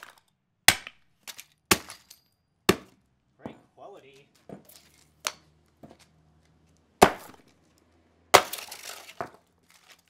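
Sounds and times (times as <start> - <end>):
fragments clattering: 8.4 - 10.0.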